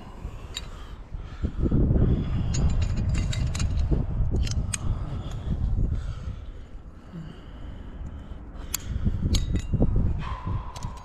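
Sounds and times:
metal climbing gear clinking: 0.4 - 1.0, 2.1 - 6.0, 8.1 - 11.0.

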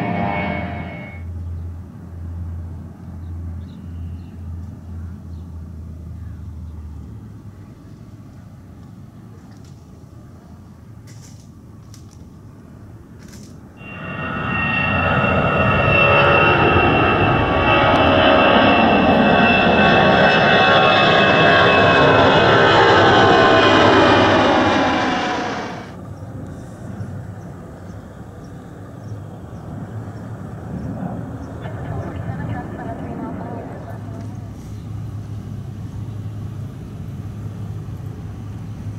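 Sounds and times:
faint jet rumble: 0.0 - 2.3, 13.8 - 38.9
jet engines passing overhead: 0.0 - 3.6, 12.5 - 38.9.

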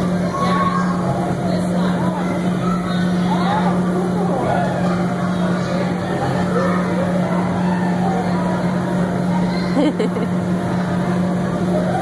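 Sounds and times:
blower fans humming: 0.0 - 12.0
children calling and chattering: 0.0 - 12.0.

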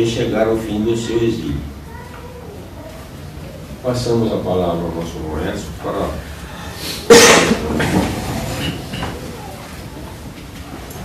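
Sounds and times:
chair moving on tiled floor: 7.5 - 11.0.

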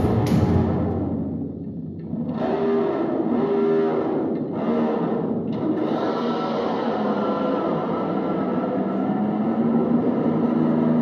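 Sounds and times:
distorted electric guitar drone: 0.0 - 11.0.

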